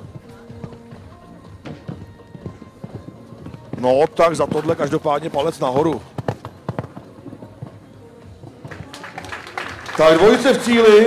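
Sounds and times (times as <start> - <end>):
faint background music: 0.0 - 11.0
horse hoofbeats on sand: 0.0 - 11.0.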